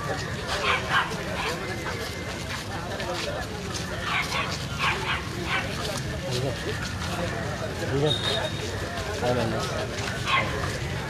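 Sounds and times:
crowd chatter: 0:00.0 - 0:11.0
crowd footsteps: 0:00.0 - 0:11.0
dog barking: 0:04.1 - 0:05.8, 0:10.2 - 0:10.6.

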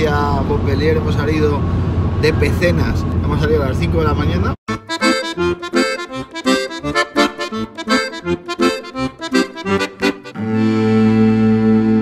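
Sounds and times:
accordion music: 0:04.7 - 0:12.0.

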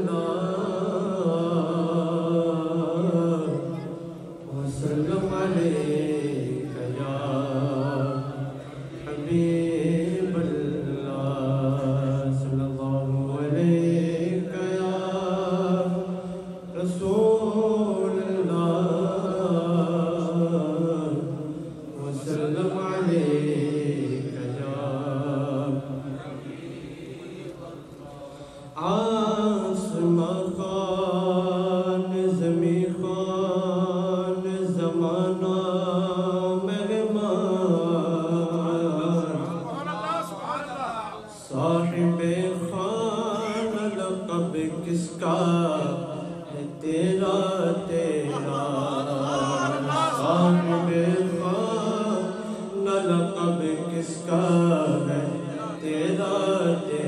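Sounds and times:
man chanting melismatically: 0:00.0 - 0:57.0
man singing unaccompanied: 0:00.0 - 0:57.0.

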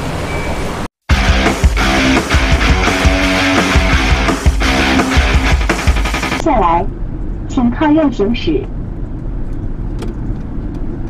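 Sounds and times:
car engine and road noise: 0:00.0 - 0:11.0
rock music with drum hits: 0:01.1 - 0:06.4.

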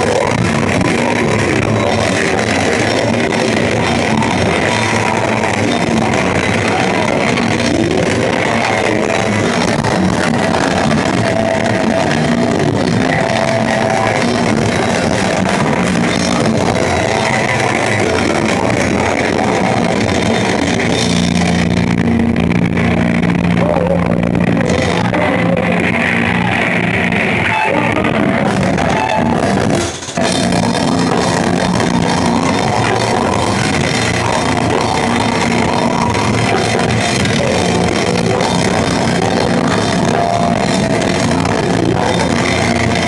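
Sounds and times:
metal band playing live: 0:00.0 - 0:43.0.

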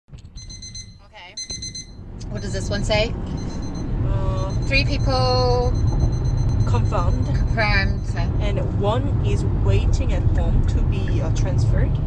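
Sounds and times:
rapid high-pitched alert beeps: 0:00.4 - 0:08.5.

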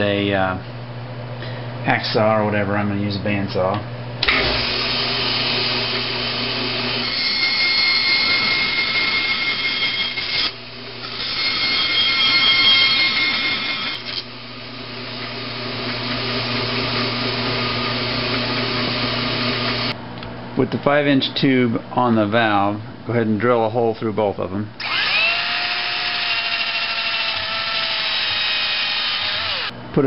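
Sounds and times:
bandsaw motor running: 0:04.2 - 0:20.0, 0:24.8 - 0:29.8
saw blade whine cutting plastic: 0:04.4 - 0:20.0, 0:24.8 - 0:29.7.

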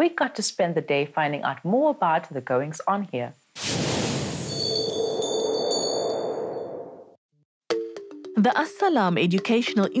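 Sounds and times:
high bell-like chimes: 0:04.5 - 0:07.2
music: 0:07.7 - 0:10.0.

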